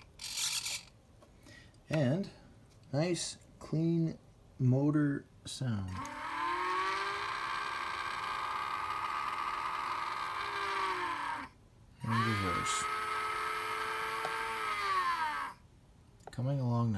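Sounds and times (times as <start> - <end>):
electric motors whining: 5.9 - 15.6.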